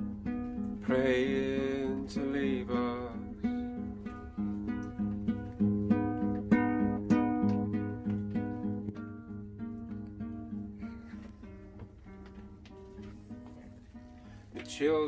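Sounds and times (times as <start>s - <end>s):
acoustic guitar strumming chords: 0.0s - 15.0s.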